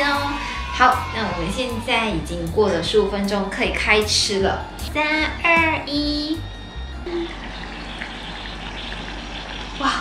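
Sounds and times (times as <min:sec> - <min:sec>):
broth bubbling: 0:07.0 - 0:10.0.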